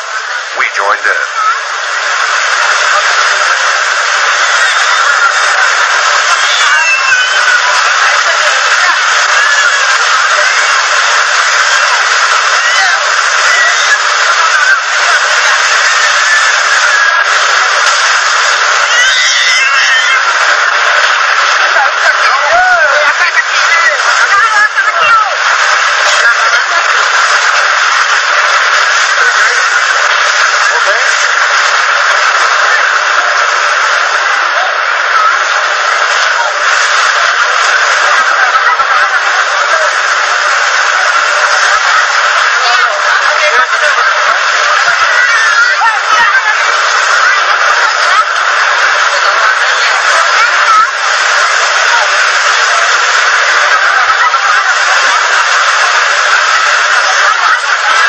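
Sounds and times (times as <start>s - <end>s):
crowd voices: 0.0s - 58.0s
surf washing onto beach: 0.0s - 58.0s.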